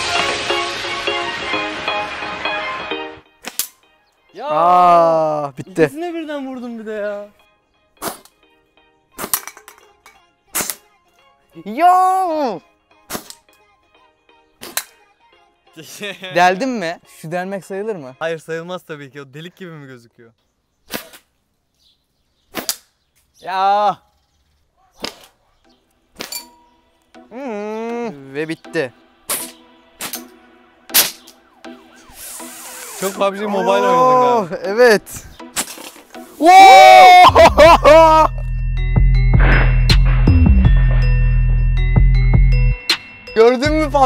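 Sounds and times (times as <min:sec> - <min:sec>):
music: 0:00.0 - 0:19.4, 0:25.7 - 0:44.0
sharp cracks: 0:03.4 - 0:03.8, 0:22.5 - 0:23.0, 0:29.3 - 0:31.4
dart clinking on glass: 0:26.2 - 0:26.7
glass clinking or breaking: 0:26.2 - 0:26.7, 0:39.2 - 0:41.7
blowgun puff: 0:32.0 - 0:33.2
drawn-out shout: 0:33.1 - 0:34.6, 0:36.4 - 0:38.3.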